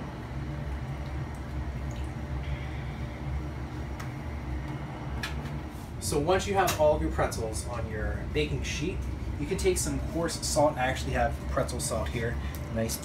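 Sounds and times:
steady low hum: 0.0 - 13.0
water sloshing and dripping: 0.2 - 3.2.

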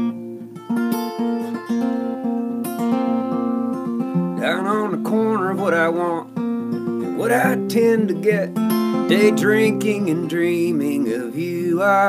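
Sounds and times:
acoustic guitar strummed: 0.0 - 12.0
man singing: 4.4 - 6.3, 7.0 - 12.0.

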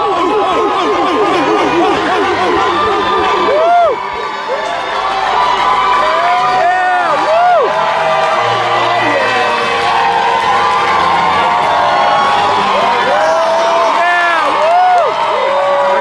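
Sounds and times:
arena crowd cheering and yelling: 0.0 - 16.0
rising and falling whoops: 0.0 - 16.0.

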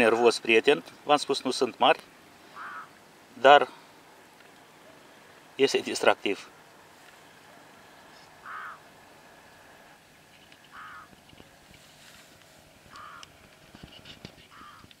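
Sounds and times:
crow cawing: 2.4 - 3.0, 8.1 - 9.0, 10.7 - 11.2, 12.8 - 13.4, 14.4 - 14.9.

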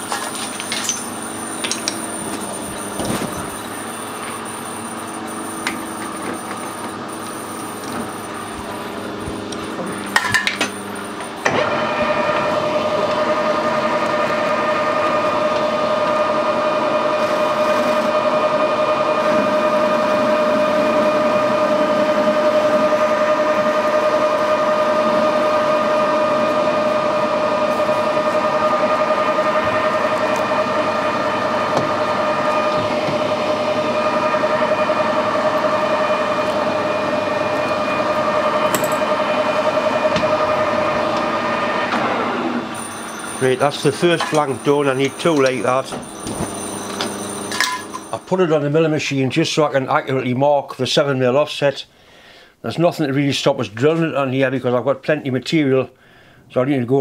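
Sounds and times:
metal lathe whining: 0.0 - 49.7.

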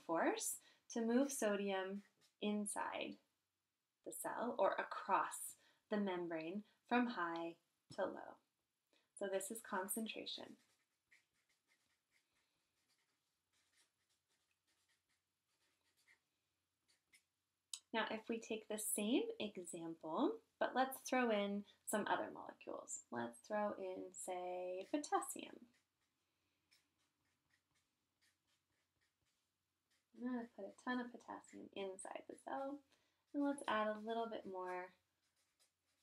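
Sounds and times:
marker scratching on surface: 0.2 - 2.8, 9.2 - 17.5, 23.3 - 36.0.

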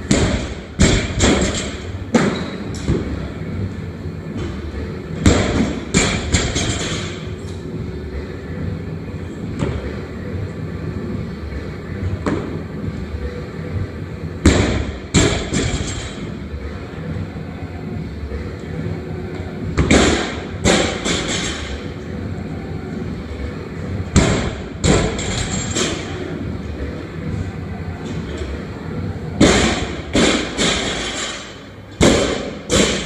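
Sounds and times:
large room background noise: 0.0 - 33.0.

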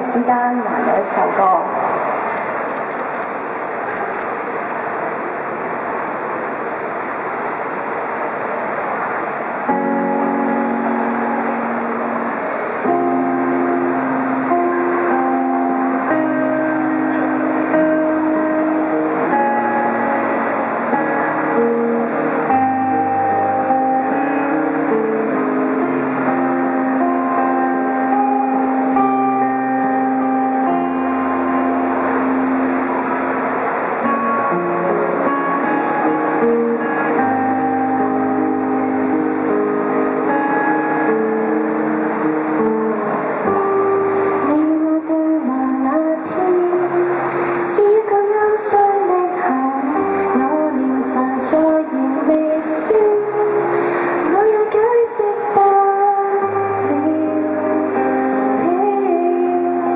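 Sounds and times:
steady background noise: 0.0 - 59.9
acoustic guitar playing: 4.4 - 59.9.

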